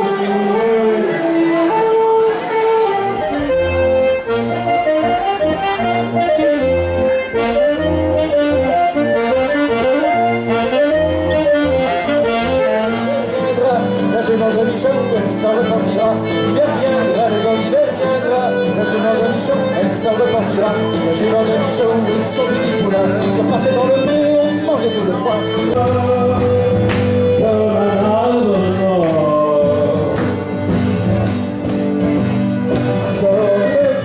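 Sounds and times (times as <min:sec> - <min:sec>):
folk dance music with accordion: 0:00.0 - 0:34.0.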